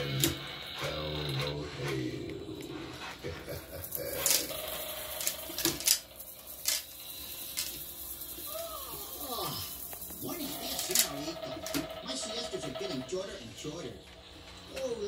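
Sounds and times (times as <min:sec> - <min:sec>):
recorded pirate voice: 0:00.0 - 0:04.6
faint hum: 0:00.0 - 0:15.0.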